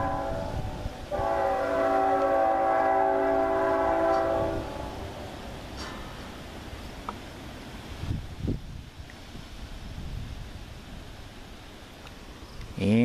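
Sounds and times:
locomotive air horn blasts: 0.0 - 5.4.

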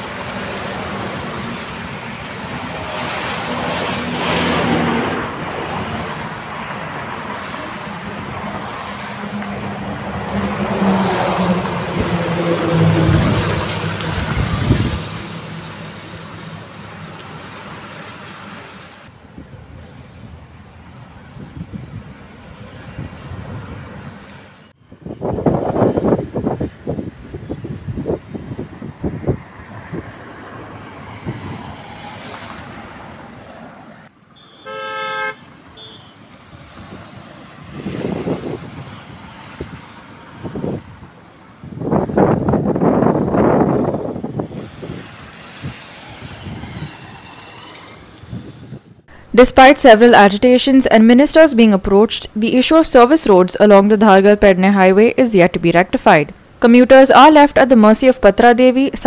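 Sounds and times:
heavy vehicle engine: 0.0 - 24.8, 35.4 - 50.0
highway traffic passing: 0.0 - 59.0
short car horn toot: 34.4 - 36.2.

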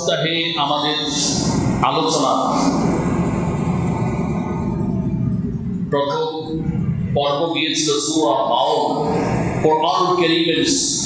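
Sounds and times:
low rumbling background noise: 0.0 - 11.0.

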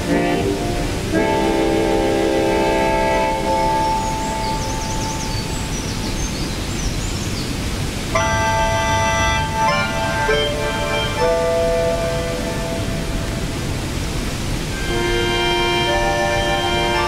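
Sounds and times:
synthesizer chord: 0.0 - 4.6, 8.2 - 14.1, 14.7 - 17.0
waterfall rushing: 0.0 - 17.0.

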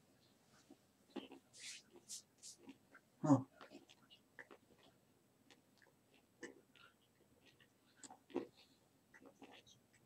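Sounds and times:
soft hiss: 0.0 - 3.4.

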